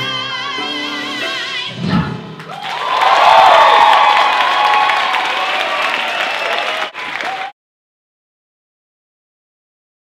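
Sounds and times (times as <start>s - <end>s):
audience applauding and cheering: 2.4s - 7.6s.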